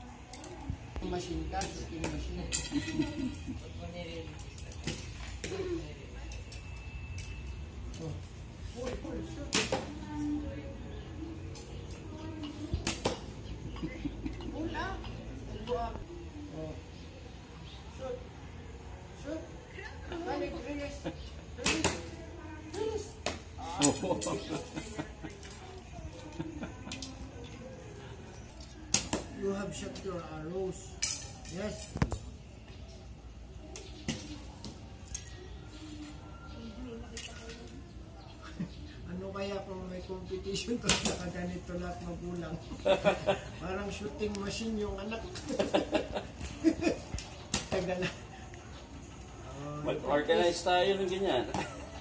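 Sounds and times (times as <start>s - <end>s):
people talking in background: 0.0s - 52.0s
soft indistinct voices: 0.0s - 52.0s.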